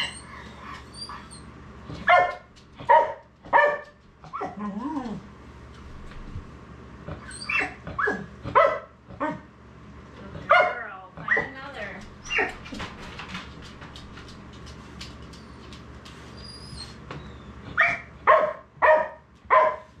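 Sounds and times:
dog barking: 2.0s - 4.6s, 7.5s - 9.5s, 10.5s - 11.5s, 17.8s - 19.9s.

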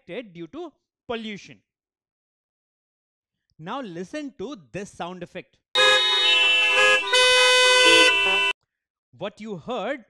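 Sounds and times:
car horns honking: 5.8s - 8.6s.

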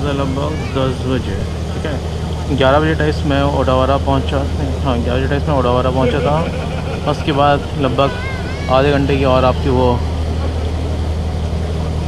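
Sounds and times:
ship engine drone: 0.0s - 12.0s.

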